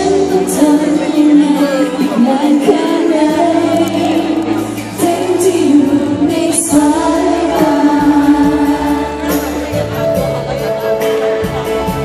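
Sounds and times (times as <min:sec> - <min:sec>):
woman singing pop ballad: 0:00.0 - 0:09.8
band accompaniment: 0:00.0 - 0:12.0.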